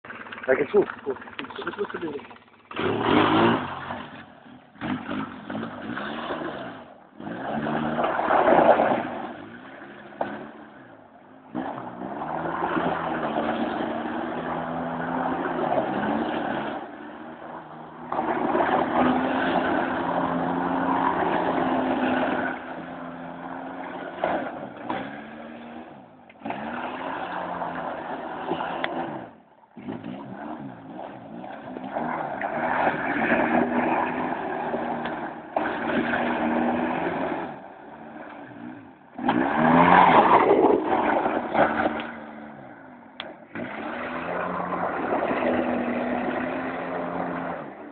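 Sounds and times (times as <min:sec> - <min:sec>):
vehicle engine running: 0:00.0 - 0:07.3.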